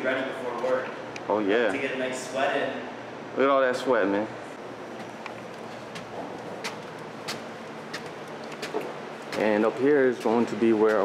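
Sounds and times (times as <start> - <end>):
steady background hiss: 0.0 - 11.0
footsteps on wooden stairs: 4.9 - 9.6.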